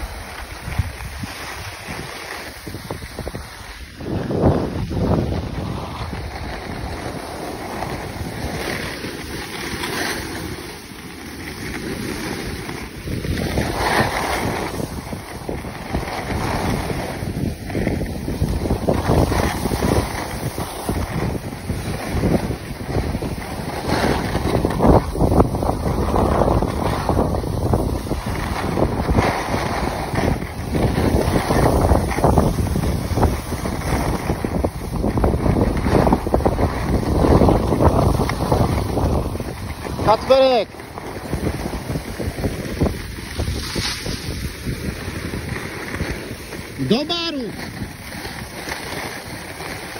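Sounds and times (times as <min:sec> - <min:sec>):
skis scraping on snow: 0:00.0 - 0:49.9
wind buffeting microphone: 0:00.0 - 0:49.9.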